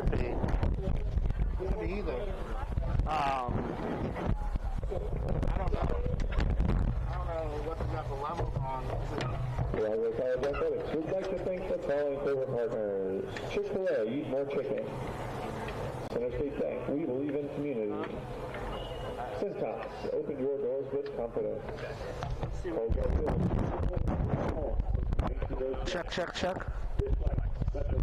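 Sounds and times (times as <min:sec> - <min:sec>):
low rumble: 0:00.0 - 0:09.7
people calling and chattering: 0:00.0 - 0:28.0.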